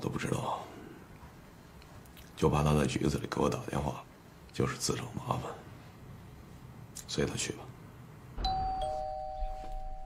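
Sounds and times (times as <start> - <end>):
doorbell chime ringing: 8.4 - 10.0.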